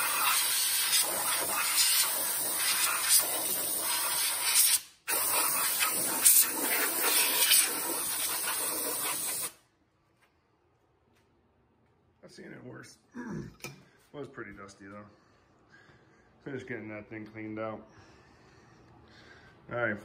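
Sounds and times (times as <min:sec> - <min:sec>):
compressed air blow gun hissing: 0:00.0 - 0:09.6.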